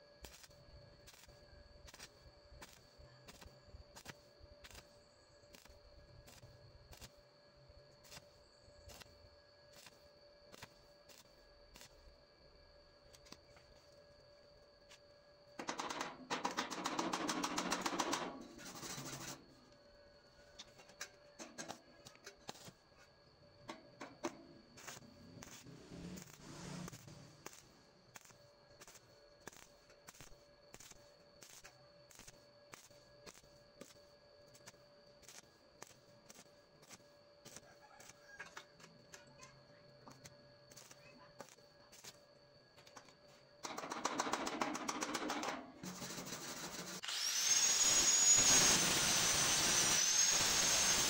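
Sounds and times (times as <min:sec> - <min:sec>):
welding arc crackling: 0:24.8 - 0:34.0, 0:45.8 - 0:51.0
wire brush scrubbing metal: 0:45.9 - 0:47.0.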